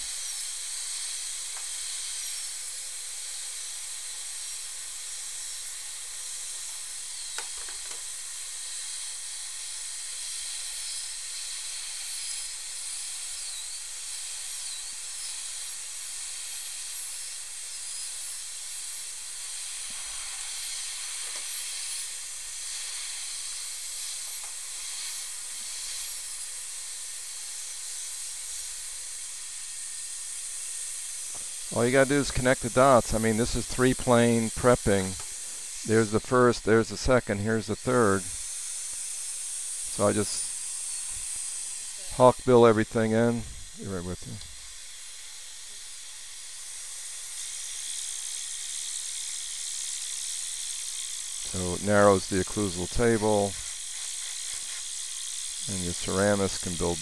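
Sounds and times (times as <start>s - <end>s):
dental drill hissing: 0.0s - 57.0s
dental drill whine: 0.0s - 57.0s.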